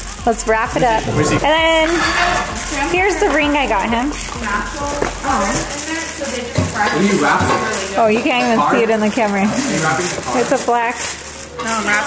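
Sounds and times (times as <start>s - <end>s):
gift wrapping rustling: 0.0s - 12.0s
people talking indistinctly: 0.0s - 12.0s.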